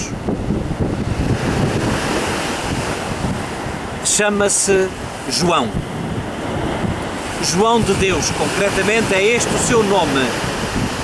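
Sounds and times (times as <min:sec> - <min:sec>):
surf washing onto rocky shore: 0:00.0 - 0:11.0
wind buffeting microphone: 0:00.0 - 0:11.0.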